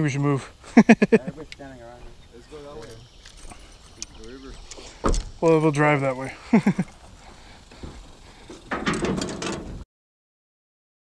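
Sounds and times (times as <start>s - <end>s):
faint outdoor noise: 0.0s - 9.8s
truck door opening and shutting: 4.7s - 5.5s, 7.8s - 9.8s.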